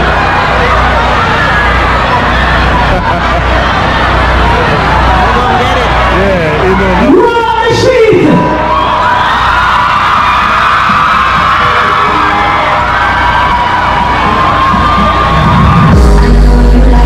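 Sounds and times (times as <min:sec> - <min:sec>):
crowd whooping and yelling: 0:00.0 - 0:17.0
live dancehall music over speakers: 0:00.0 - 0:17.0
heavy bass beat: 0:10.1 - 0:17.0.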